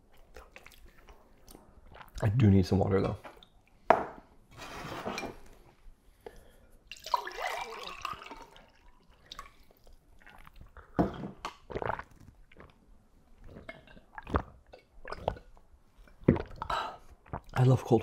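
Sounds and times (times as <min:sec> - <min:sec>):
water pouring into glass tumbler: 0:06.9 - 0:09.6.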